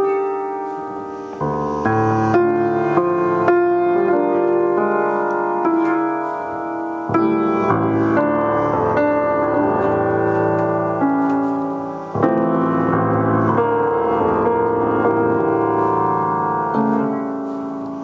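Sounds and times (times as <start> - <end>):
slow piano chords: 0.0 - 18.0.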